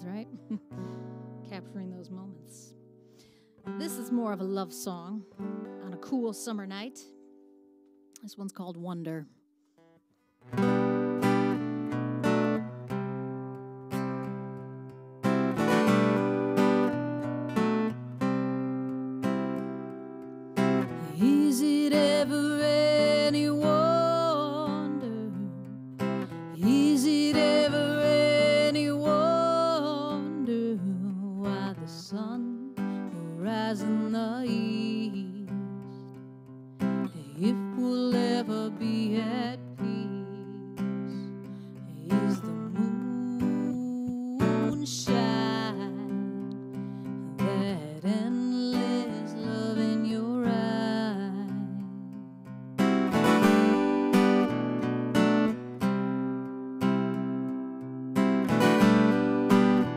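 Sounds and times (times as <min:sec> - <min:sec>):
woman singing: 0:00.0 - 0:02.7, 0:03.7 - 0:07.1, 0:21.0 - 0:36.0, 0:37.0 - 0:52.4
acoustic guitar strumming: 0:00.0 - 0:09.2, 0:09.8 - 0:59.9.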